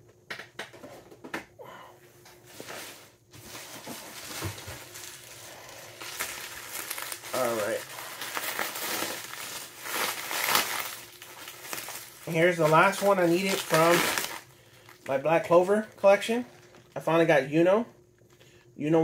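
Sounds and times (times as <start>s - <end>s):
bubble wrap crinkling: 2.5s - 17.3s.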